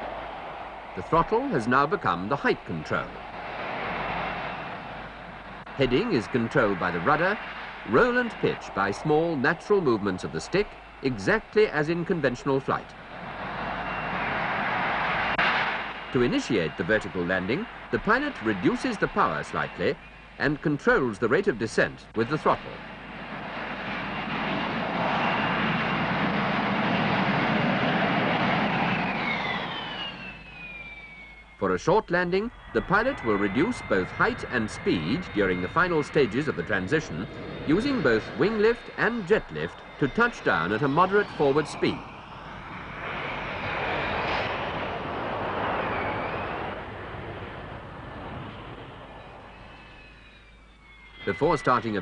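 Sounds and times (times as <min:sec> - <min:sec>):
jet engine whine falling in pitch: 0:00.0 - 0:52.0
loud jet roar: 0:00.0 - 0:52.0.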